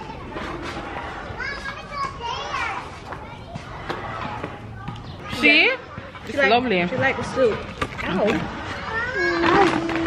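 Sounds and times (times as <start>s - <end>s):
children playing and calling out: 0.0s - 10.0s.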